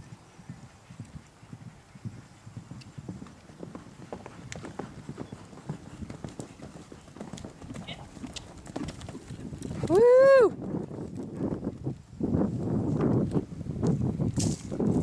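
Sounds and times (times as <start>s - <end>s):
horse hooves thudding on grass: 0.0s - 15.0s.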